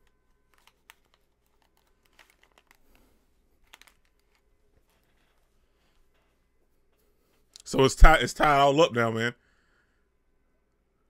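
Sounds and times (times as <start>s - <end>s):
headphones rustling and clicking: 0.0s - 7.7s.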